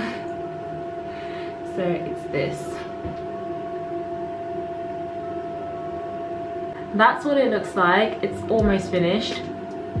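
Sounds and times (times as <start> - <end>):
faint held tones: 0.0 - 10.0
steady background hum: 0.0 - 10.0.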